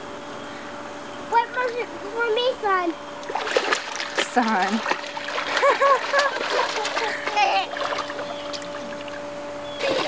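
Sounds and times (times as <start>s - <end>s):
children calling: 1.3s - 3.0s
water splashing in pool: 3.2s - 10.0s.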